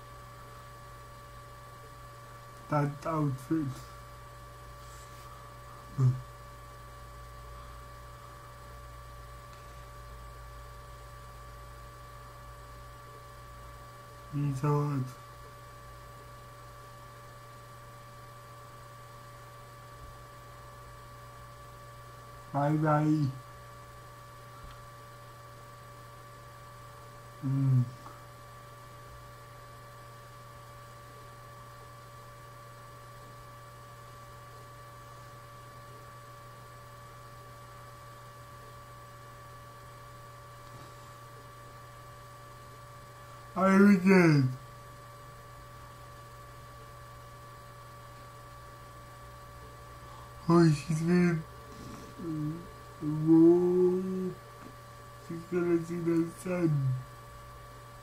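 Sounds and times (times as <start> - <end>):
electrical mains hum: 0.0 - 58.0
man speaking: 2.7 - 4.0, 5.9 - 6.3, 14.3 - 15.2, 22.5 - 23.4, 27.4 - 28.0, 43.6 - 44.6, 50.4 - 54.4, 55.2 - 57.1
man murmuring: 5.9 - 6.3, 27.4 - 28.1, 50.5 - 54.4, 55.3 - 57.1
man humming: 5.9 - 6.4, 27.4 - 28.2, 50.6 - 54.7, 55.3 - 57.1.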